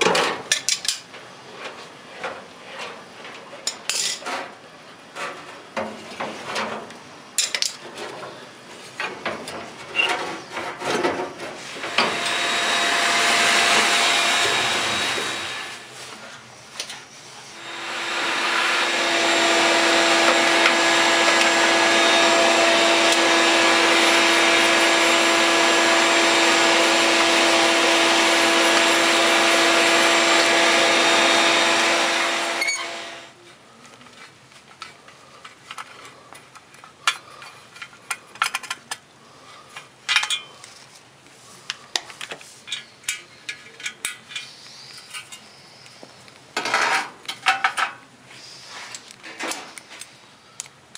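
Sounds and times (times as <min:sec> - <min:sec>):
vacuum cleaner motor whine: 0:11.7 - 0:15.9, 0:17.6 - 0:33.4.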